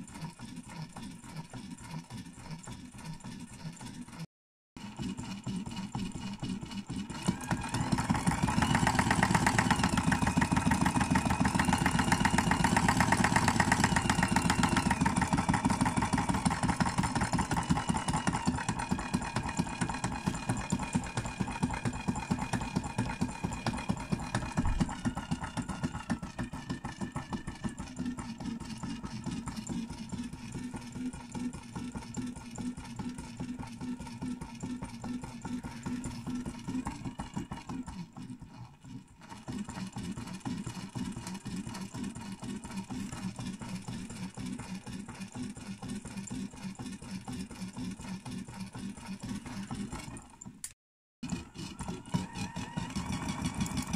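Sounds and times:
machine mechanical rattle: 0.0 - 53.9.

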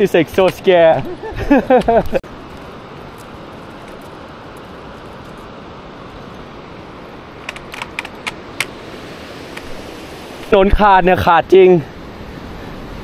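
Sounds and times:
steady rushing noise: 0.0 - 13.0
stones clicking underfoot: 7.5 - 8.7.

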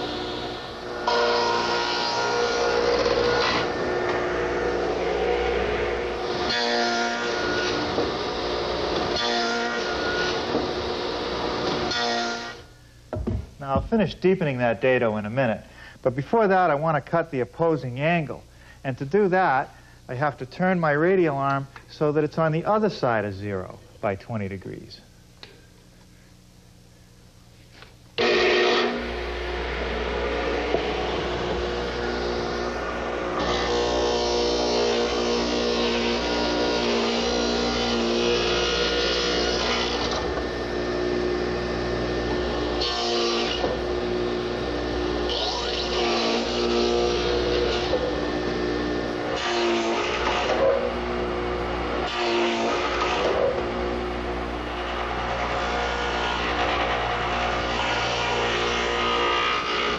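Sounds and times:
radial arm saw cutting wood: 0.0 - 12.7, 28.2 - 59.9.

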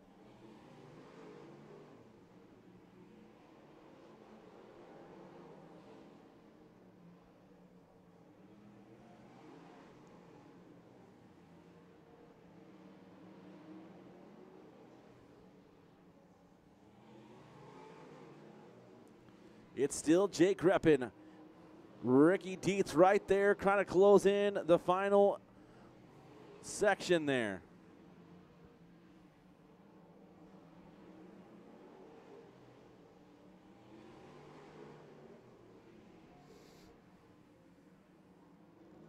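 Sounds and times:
faint race car engines: 0.0 - 39.0.

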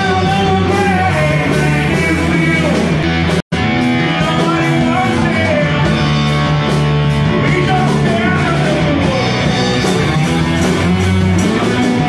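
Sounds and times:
man singing: 0.0 - 3.0, 3.9 - 6.5, 7.1 - 9.9
bass guitar: 0.0 - 12.0
drum kit: 0.0 - 12.0
electric guitar: 0.0 - 12.0.

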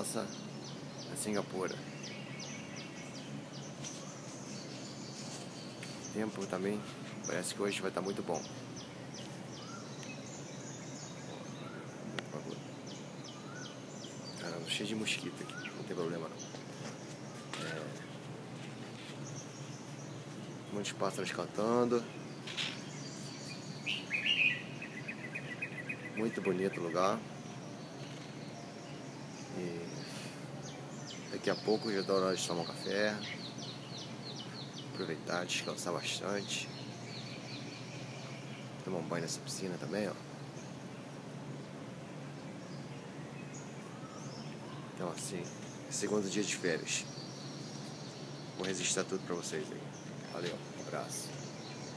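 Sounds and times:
birds chirping: 0.0 - 51.9
low background hum: 0.0 - 51.9.

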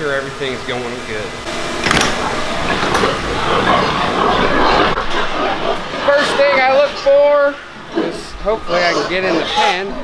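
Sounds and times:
ventilation noise: 0.0 - 10.0
din of many pigs: 2.2 - 10.0.

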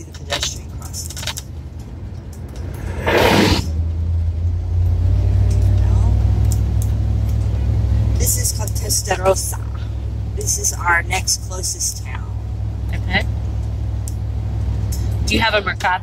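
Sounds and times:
vehicle engine and road rumble: 0.0 - 16.0
brief rushing noise: 2.5 - 3.8.

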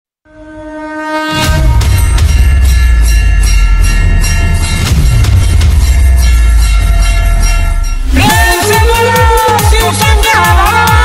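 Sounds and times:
electronic music with heavy bass: 1.5 - 11.0.

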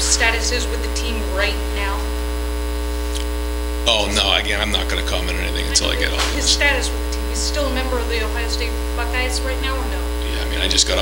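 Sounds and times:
electrical mains hum: 0.0 - 11.0
man's voice: 3.8 - 6.9, 10.1 - 11.0.

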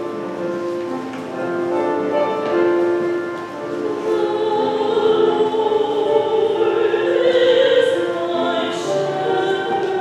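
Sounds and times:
choir singing held notes: 3.4 - 10.0.

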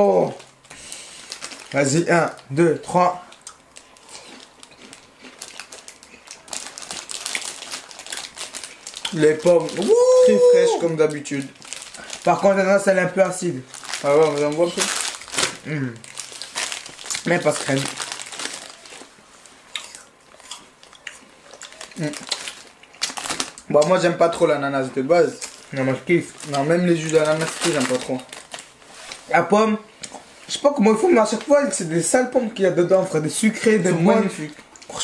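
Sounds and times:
plastic bag crinkling: 0.2 - 2.6, 3.2 - 10.2, 10.8 - 19.2, 19.9 - 23.8, 25.2 - 29.4
chewing crisp apple: 3.3 - 9.6, 19.7 - 23.4
paper bag rustling: 13.5 - 19.1, 25.4 - 29.4
person humming mmh: 15.6 - 16.0.

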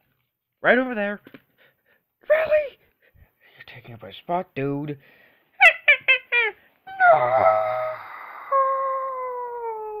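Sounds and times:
child wailing: 6.9 - 10.0.

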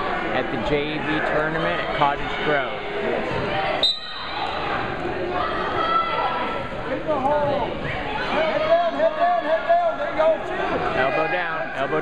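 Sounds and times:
gym crowd chatter: 0.0 - 12.0
referee's whistle blast: 3.8 - 4.4.

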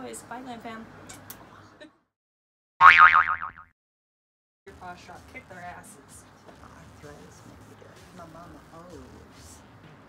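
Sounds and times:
cartoon boing spring effect: 2.8 - 3.7.

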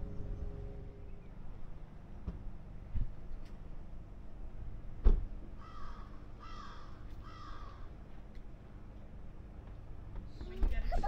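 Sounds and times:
low steady rumble: 0.0 - 11.0
crow cawing: 5.6 - 8.0.

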